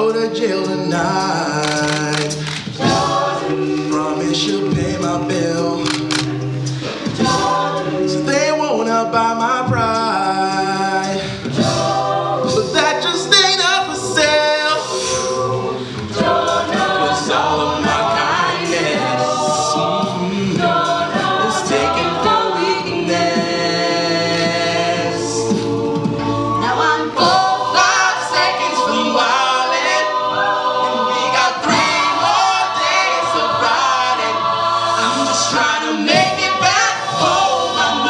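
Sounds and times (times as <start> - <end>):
a cappella group singing: 0.0 - 38.0.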